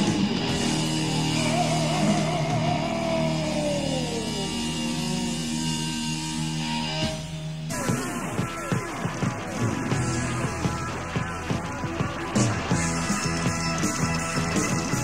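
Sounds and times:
heavy rock band playing: 0:00.0 - 0:15.0.

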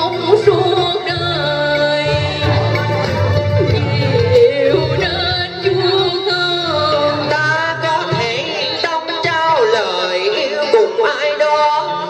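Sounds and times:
instrumental accompaniment: 0:00.0 - 0:12.0
opera singing voice: 0:00.0 - 0:12.0.

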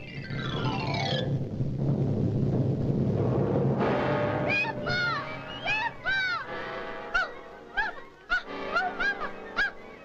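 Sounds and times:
orchestral music: 0:03.6 - 0:10.0.

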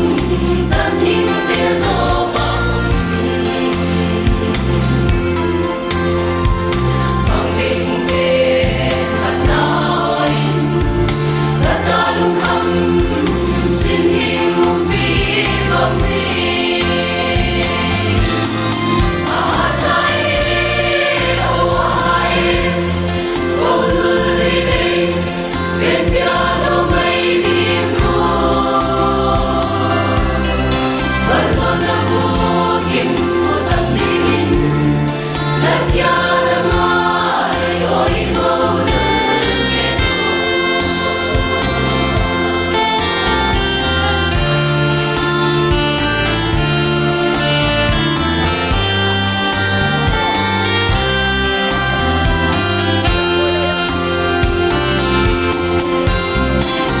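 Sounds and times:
choir singing a gospel hymn: 0:00.0 - 0:57.0.

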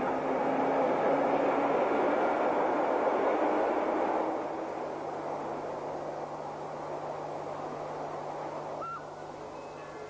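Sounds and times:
passenger train rolling past: 0:00.0 - 0:08.8.

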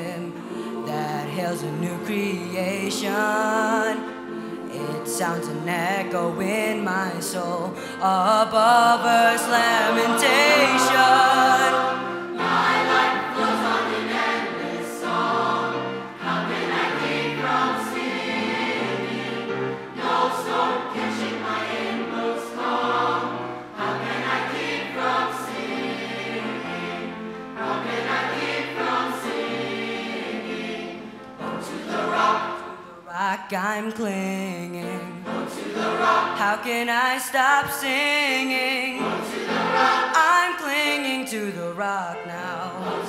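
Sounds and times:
youth choir singing a hymn: 0:00.0 - 0:33.6, 0:34.6 - 0:43.0.

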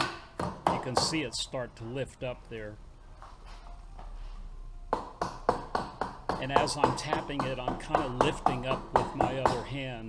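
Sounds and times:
rubber mallet tapping metal: 0:04.9 - 0:09.8.

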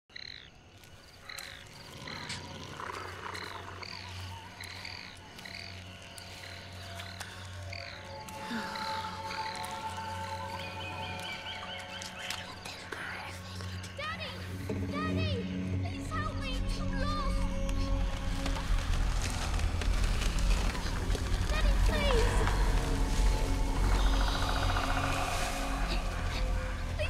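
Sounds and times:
low music drone: 0:02.0 - 0:27.0.

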